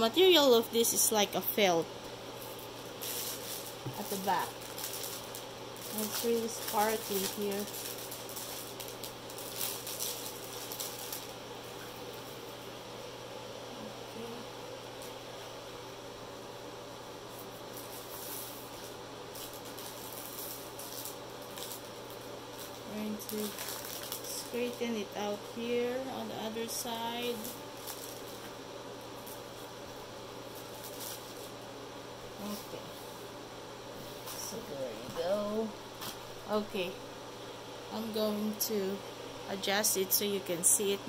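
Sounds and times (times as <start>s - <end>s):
low hum and hiss: 0.0s - 41.0s
plastic film rustling under hand: 2.3s - 12.6s, 17.3s - 31.7s, 34.0s - 36.9s.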